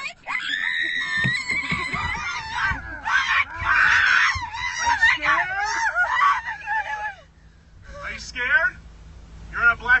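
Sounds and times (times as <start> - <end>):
people screaming in fright: 0.2 - 7.3.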